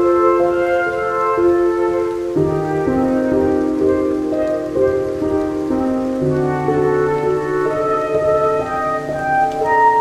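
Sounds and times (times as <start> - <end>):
slow classical instrumental music: 0.0 - 10.0
steady rainfall: 0.0 - 10.0.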